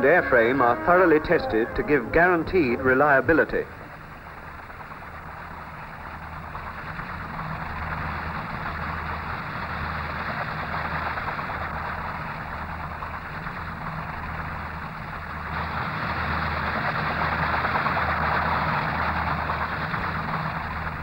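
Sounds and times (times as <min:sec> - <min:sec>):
low hum: 0:00.0 - 0:21.0
rotorcraft engines rushing: 0:00.0 - 0:21.0.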